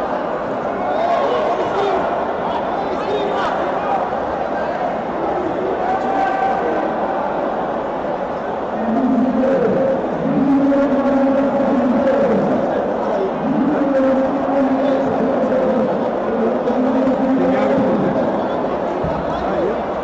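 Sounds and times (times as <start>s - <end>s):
crowd noise: 0.0s - 20.0s.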